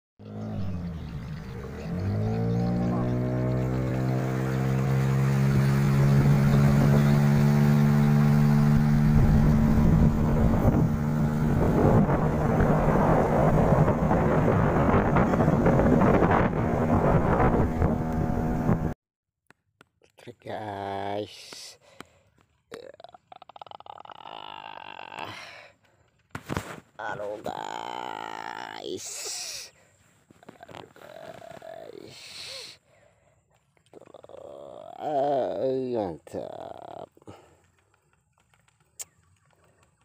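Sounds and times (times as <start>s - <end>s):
motorboat engine: 0.2s - 19.0s
water rushing along hull: 1.1s - 18.9s.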